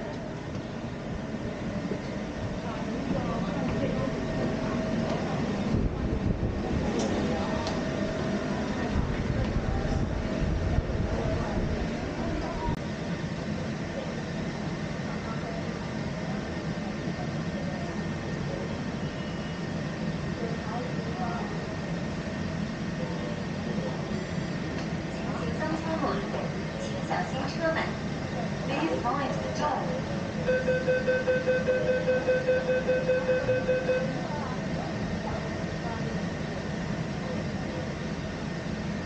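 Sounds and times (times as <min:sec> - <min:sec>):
faint indistinct voices: 0:00.0 - 0:39.0
low hum inside tram car: 0:00.0 - 0:39.0
rapid electronic warning beeps: 0:30.4 - 0:34.2.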